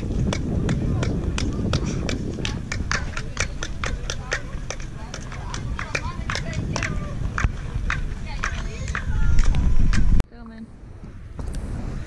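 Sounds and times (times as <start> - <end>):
crowd murmur: 0.0 - 10.2.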